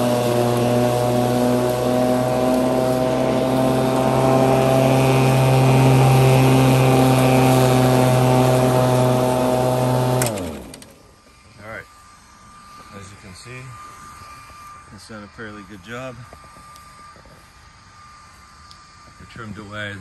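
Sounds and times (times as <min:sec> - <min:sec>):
electric lawn mower running: 0:00.0 - 0:20.0.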